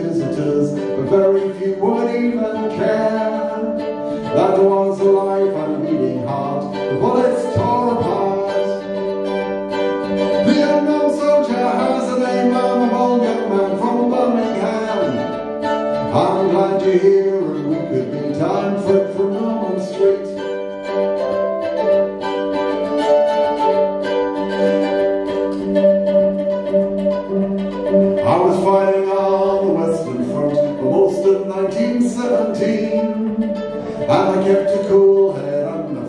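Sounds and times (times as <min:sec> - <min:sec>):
man singing folk song: 0:00.0 - 0:21.0, 0:28.2 - 0:36.0
plucked guitar: 0:00.0 - 0:36.0.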